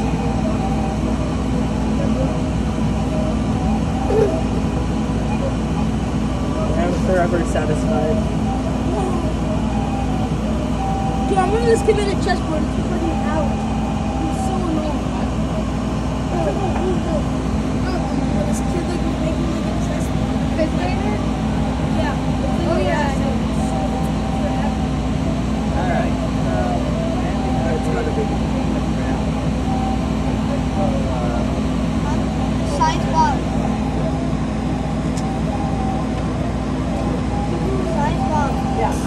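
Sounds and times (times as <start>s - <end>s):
indistinct voices chattering: 0.0s - 39.0s
laser cutter droning: 0.0s - 39.0s.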